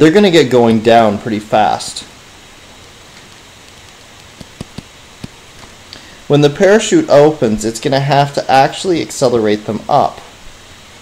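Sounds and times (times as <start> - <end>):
faint steady hiss: 0.0 - 11.0
stylus tapping on tablet screen: 3.2 - 5.4.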